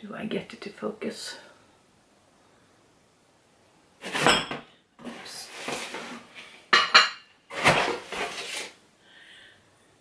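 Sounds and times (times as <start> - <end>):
glassware clinking: 6.7 - 7.3
glass shuffling in cardboard: 7.5 - 8.8.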